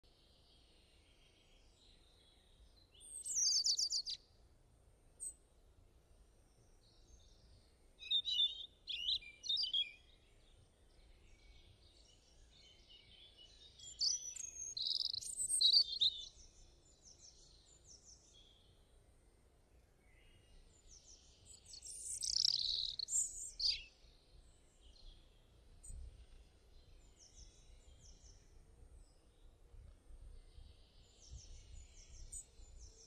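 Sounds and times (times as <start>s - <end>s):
faint background hiss: 0.0s - 33.0s
birds chirping: 3.1s - 4.2s, 11.0s - 16.4s, 20.8s - 23.9s.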